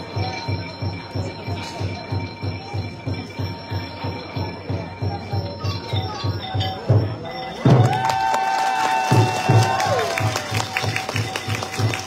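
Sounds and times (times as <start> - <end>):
traditional dance music: 0.0 - 12.0.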